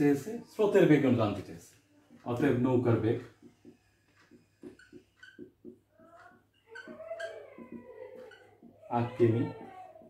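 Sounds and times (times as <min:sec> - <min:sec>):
marker squeaking on a whiteboard: 0:02.1 - 0:10.0.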